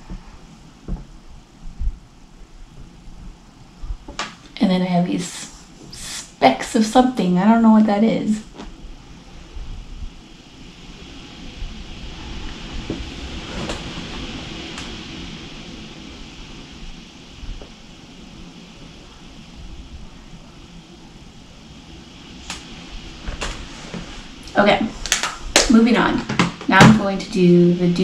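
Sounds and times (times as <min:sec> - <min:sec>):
steady background noise: 0:00.0 - 0:28.0.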